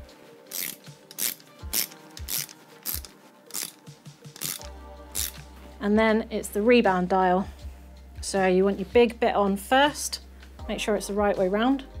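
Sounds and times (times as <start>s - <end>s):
background music: 0.0s - 12.0s
torque wrench ratchet clicks: 0.5s - 3.8s, 4.4s - 5.4s.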